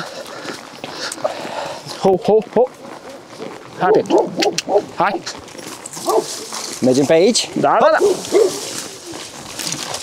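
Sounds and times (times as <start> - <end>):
horse hoof steps on dirt: 0.0 - 10.0
brush rustling: 1.9 - 10.0.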